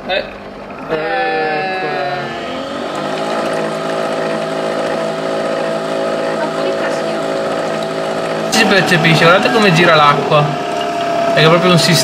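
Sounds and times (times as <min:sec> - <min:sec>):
coffee machine motor hum: 0:00.0 - 0:12.0.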